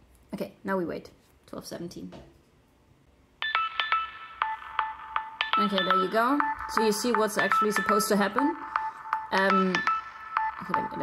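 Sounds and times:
alarm chime of repeated notes: 3.4s - 11.0s.

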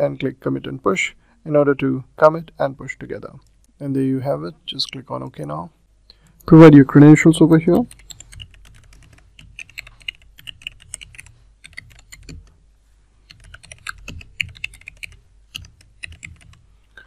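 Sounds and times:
keyboard typing clicks: 7.8s - 12.5s, 13.3s - 16.6s.

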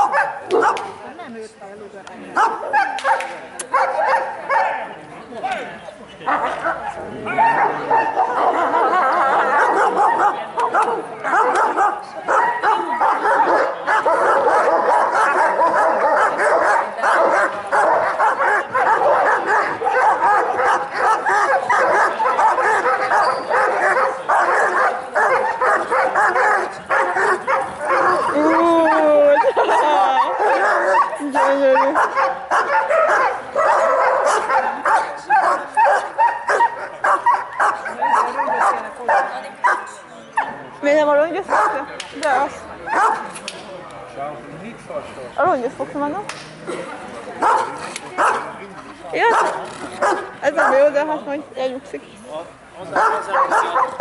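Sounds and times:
dog barking rapidly: 0.0s - 1.0s, 2.4s - 4.8s, 6.3s - 39.9s, 41.5s - 41.8s, 42.9s - 43.3s, 47.4s - 48.5s, 49.2s - 50.9s, 53.0s - 54.0s.

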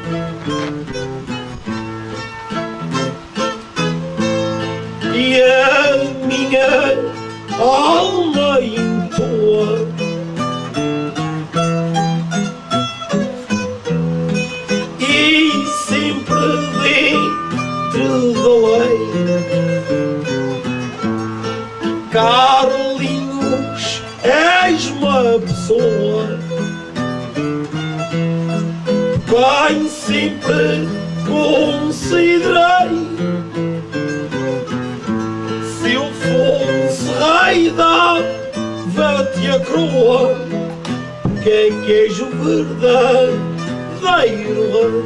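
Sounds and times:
acoustic guitar plucked melody: 0.0s - 45.0s.

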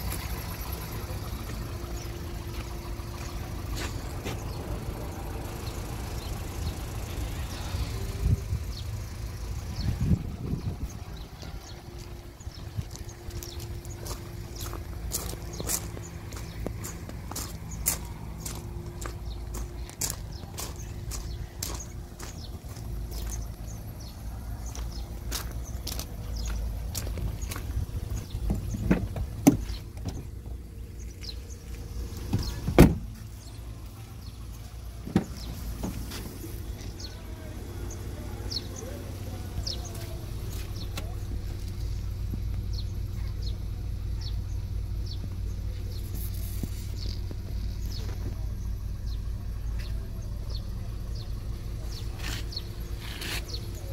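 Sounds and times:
car engine idling: 0.0s - 53.9s
loud thumps: 32.3s - 33.2s.

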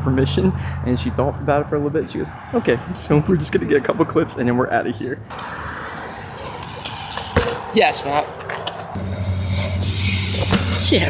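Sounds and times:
bike tyres hissing on concrete: 5.3s - 7.9s, 8.9s - 11.0s
steady low hum: 9.0s - 11.0s.

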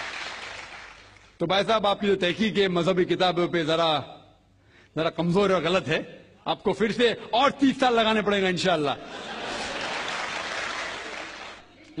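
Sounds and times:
audience applauding: 0.0s - 1.4s, 9.5s - 11.7s.

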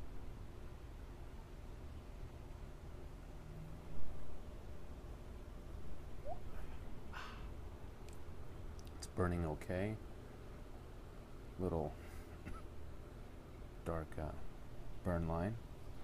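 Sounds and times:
low outdoor rumble: 0.0s - 16.0s.

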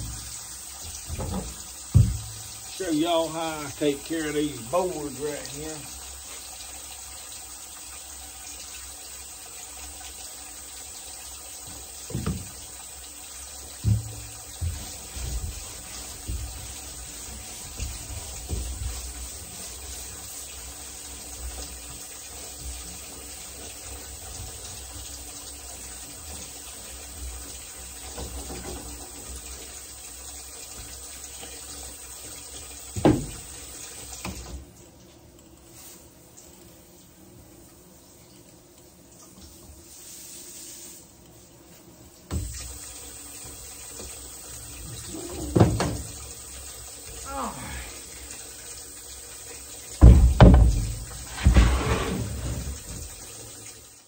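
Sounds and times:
faucet water into metal sink: 0.0s - 54.0s
sharp knocks: 50.0s - 52.2s.

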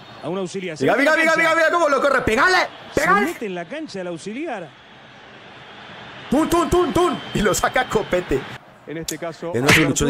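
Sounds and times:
stadium crowd hum: 0.0s - 10.0s
man talking: 0.2s - 4.7s, 6.3s - 10.0s.

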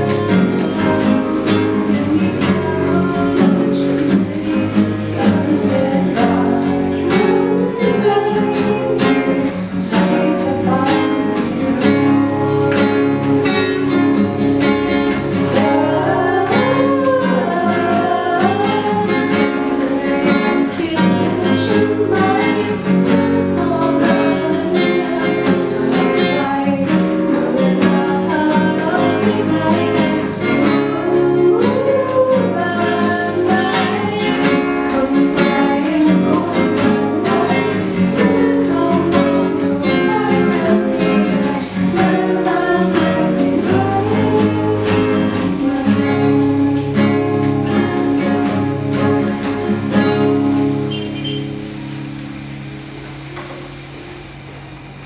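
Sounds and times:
woman singing: 0.0s - 50.8s
classical guitar: 0.0s - 55.0s.

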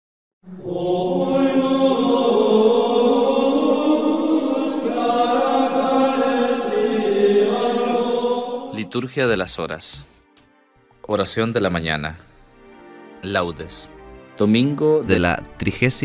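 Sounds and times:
voices chanting long notes: 0.4s - 9.2s.

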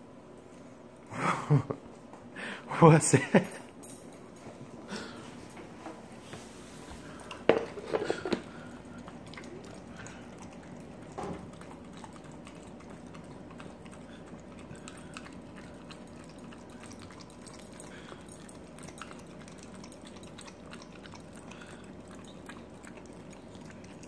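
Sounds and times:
dog licking and chewing: 6.9s - 24.0s.

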